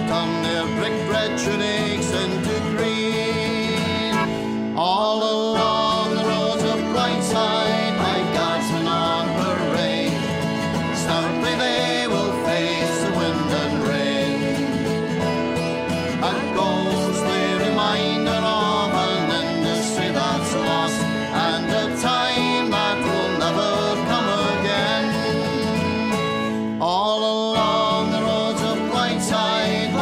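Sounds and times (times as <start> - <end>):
acoustic guitar: 0.0 - 30.0
banjo: 0.0 - 30.0
whistle: 15.1 - 26.7.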